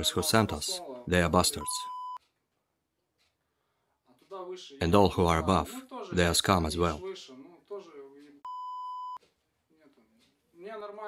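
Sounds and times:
electronic censor bleep: 0:01.6 - 0:02.2, 0:08.5 - 0:09.2.

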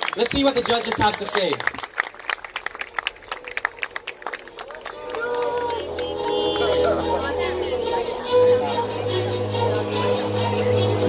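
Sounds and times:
audience clapping: 0:00.0 - 0:07.2.

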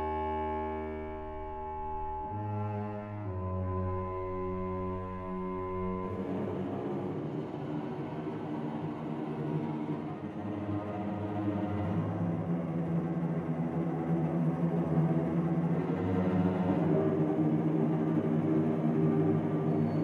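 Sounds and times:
low held note: 0:00.0 - 0:03.1
orchestral music: 0:00.0 - 0:08.0.

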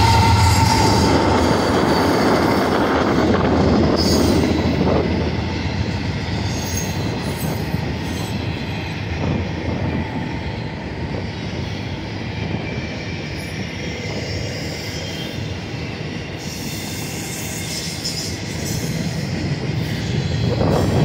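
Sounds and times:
high wheel squeals: 0:00.0 - 0:04.7, 0:12.6 - 0:21.0
diesel locomotive rumble: 0:00.0 - 0:14.7, 0:18.3 - 0:21.0
train wheels rolling on rail: 0:00.0 - 0:21.0.

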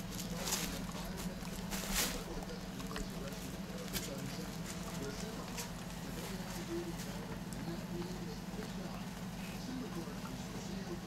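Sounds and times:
puppies rustling on a pad: 0:00.0 - 0:10.9.

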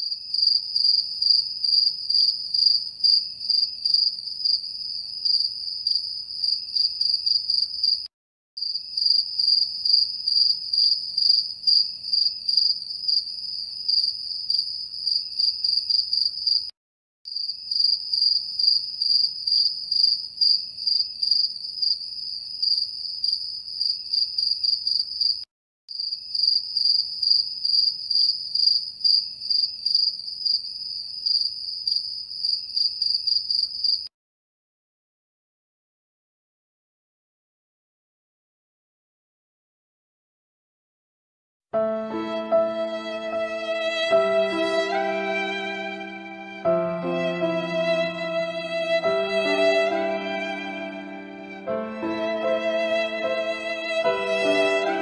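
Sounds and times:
crickets chirping: 0:00.1 - 0:08.0, 0:08.6 - 0:16.7, 0:17.4 - 0:25.4, 0:26.0 - 0:34.0.

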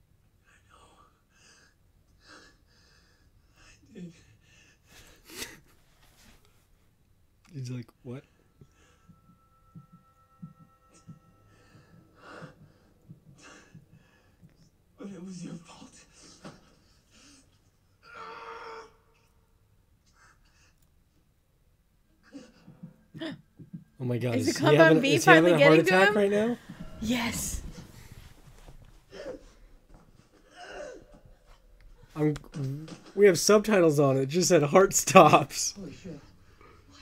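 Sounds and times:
low steady hum: 0:06.4 - 0:18.1.

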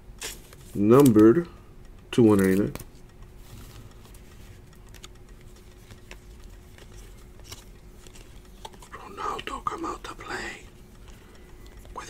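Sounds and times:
low steady hum: 0:00.0 - 0:12.0
trading cards shuffling: 0:00.2 - 0:01.4, 0:02.2 - 0:10.0.

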